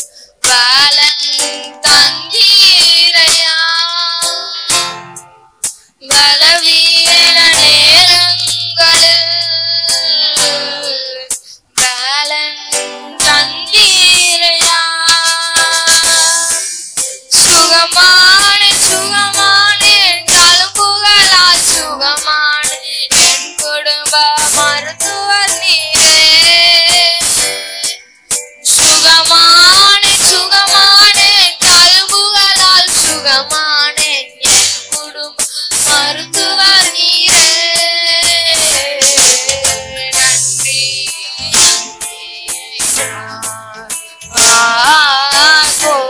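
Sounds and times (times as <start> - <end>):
drum rhythm: 0.0 - 46.0
electronic keyboard: 0.0 - 46.0
boys singing: 6.1 - 12.0, 17.4 - 22.3, 28.7 - 46.0.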